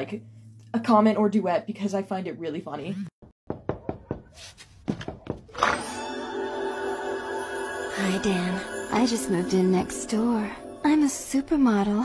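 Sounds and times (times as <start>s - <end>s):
irregular knocks or taps: 3.5s - 5.6s
background music sustained tones: 5.6s - 12.0s.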